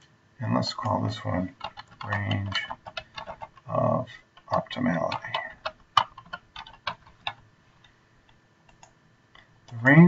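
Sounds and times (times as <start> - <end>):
computer keyboard typing: 0.8 - 3.8, 4.4 - 7.4, 8.7 - 8.9.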